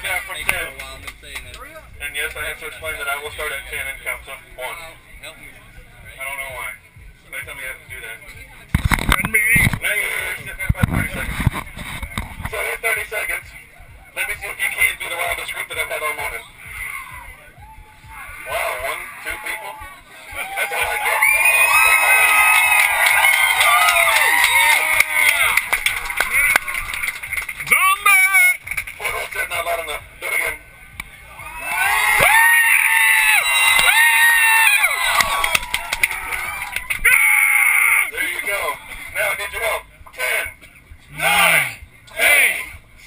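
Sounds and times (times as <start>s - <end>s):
crowd screaming and cheering: 16.6s - 28.6s, 30.8s - 38.2s.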